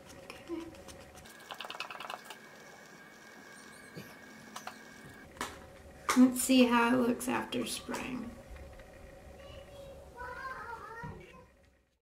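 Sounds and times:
faint whine: 0.2 - 12.0.

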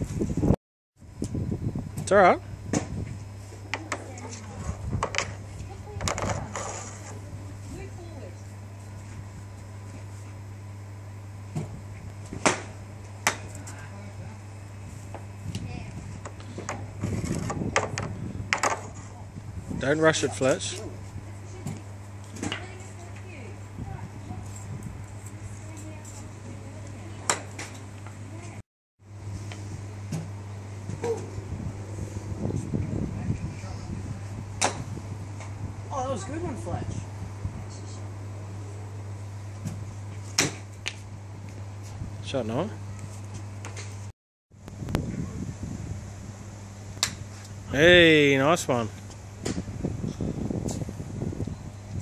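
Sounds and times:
steady low hum: 0.0 - 52.0.

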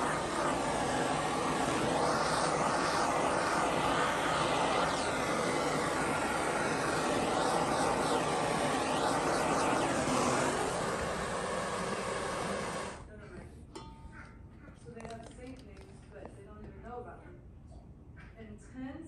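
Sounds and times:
blowtorch roaring hiss: 0.0 - 13.0.

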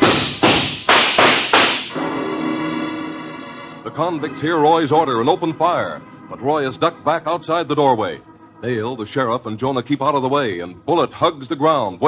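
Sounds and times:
gunshots: 0.0 - 2.0.

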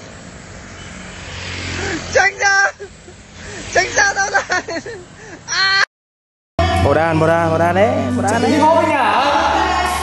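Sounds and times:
passing vehicle engine hum: 0.0 - 5.4, 6.6 - 10.0
road traffic: 0.0 - 5.8, 6.6 - 10.0.

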